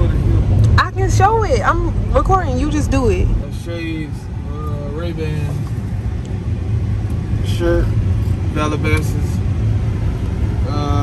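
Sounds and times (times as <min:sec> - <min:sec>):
car engine idling: 0:00.0 - 0:11.0
man speaking: 0:03.4 - 0:05.6.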